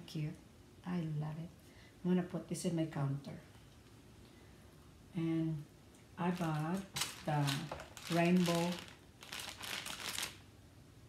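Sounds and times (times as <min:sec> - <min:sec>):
plastic bag crinkling: 0:06.2 - 0:10.4.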